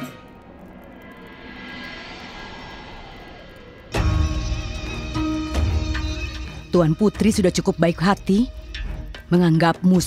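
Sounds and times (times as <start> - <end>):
faint sustained music tones: 0.0 - 10.0
long whoosh: 0.4 - 4.6.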